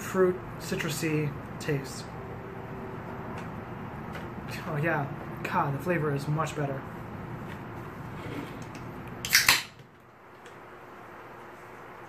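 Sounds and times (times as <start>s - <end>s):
can snapped open hiss: 9.2s - 9.7s.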